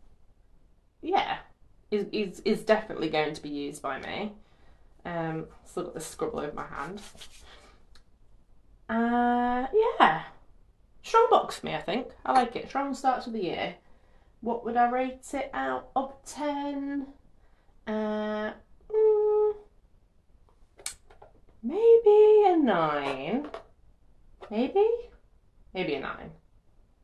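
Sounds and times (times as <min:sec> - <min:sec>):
hands rubbing together: 0:06.7 - 0:07.7.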